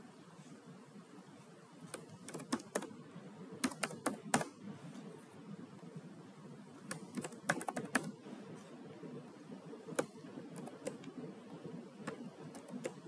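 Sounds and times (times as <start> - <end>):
computer keyboard key clicks: 1.9 - 2.9, 3.6 - 4.5, 6.9 - 8.2, 9.9 - 11.1, 12.0 - 13.0.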